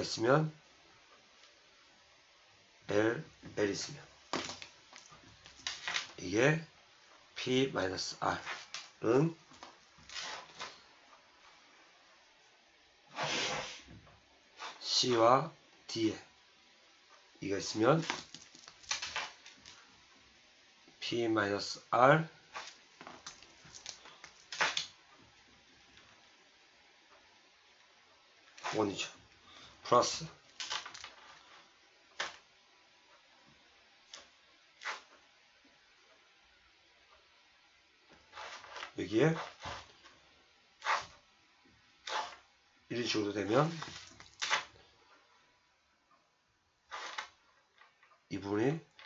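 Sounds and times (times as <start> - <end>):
pen scratching on paper: 40.8 - 41.1.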